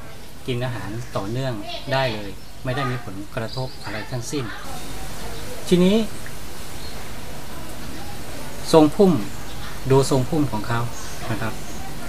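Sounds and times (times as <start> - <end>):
man talking: 0.4 - 4.6, 5.6 - 6.2, 8.6 - 11.6.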